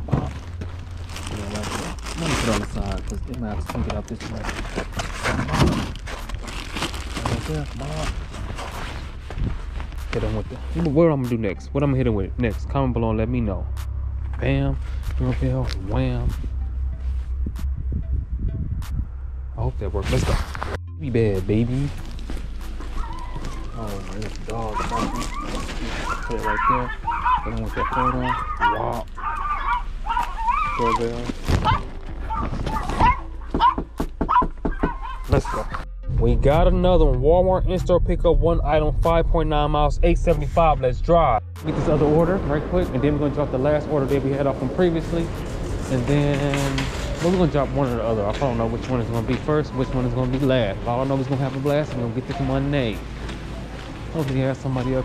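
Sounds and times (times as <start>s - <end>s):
footsteps on crusted snow: 20.0s - 20.8s, 21.5s - 33.8s
dog barking: 23.0s - 23.8s, 24.7s - 31.0s, 31.6s - 35.8s.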